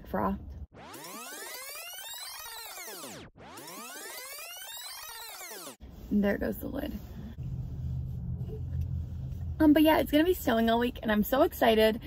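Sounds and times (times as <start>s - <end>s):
electronic tones sweeping up and down: 0.6s - 5.8s.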